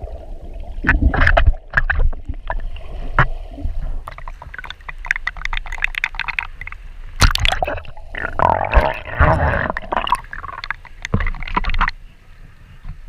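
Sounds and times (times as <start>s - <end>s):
water splashing and sloshing: 0.0s - 13.0s.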